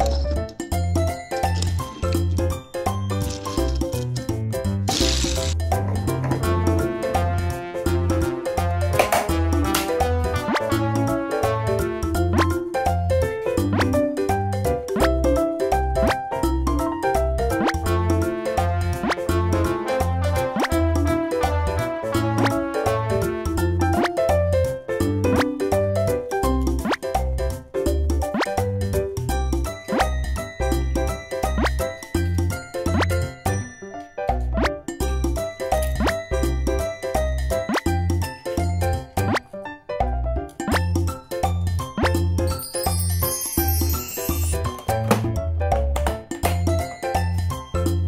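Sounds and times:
bouncy children's music: 0:00.0 - 0:48.0.

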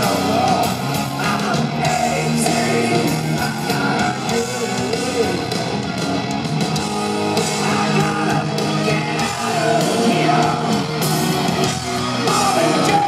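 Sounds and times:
drums and cymbals: 0:00.0 - 0:13.0
electric guitar: 0:00.0 - 0:13.0.

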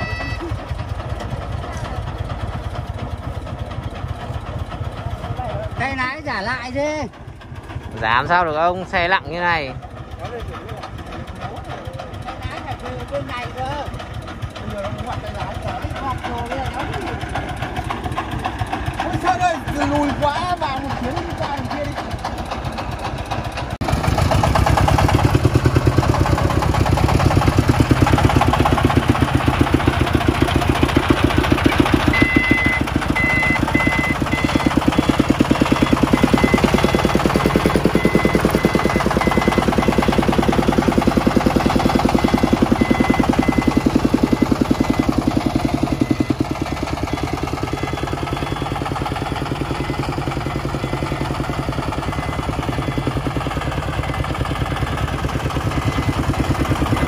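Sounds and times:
thin high tone: 0:00.0 - 0:00.6
diesel engine thudding: 0:00.0 - 0:57.0.

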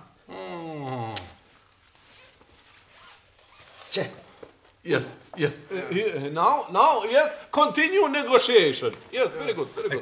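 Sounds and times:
cloth flag rustling: 0:01.4 - 0:05.3.

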